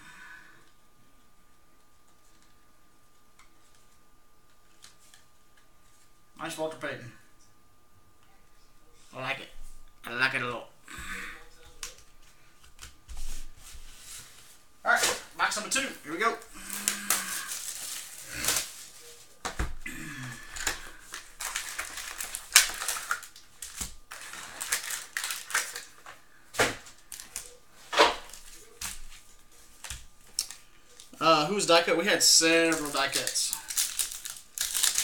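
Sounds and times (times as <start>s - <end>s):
packs rustling: 14.9s - 19.4s, 20.4s - 35.0s.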